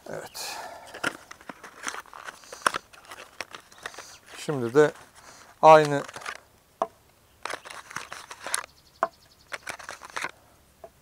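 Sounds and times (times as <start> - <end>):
packaging rustling: 0.5 - 6.4, 7.4 - 8.7, 9.5 - 10.3.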